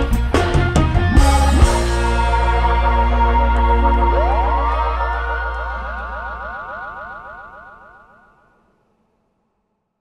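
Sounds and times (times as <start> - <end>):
rising synth glides: 2.3 - 8.7.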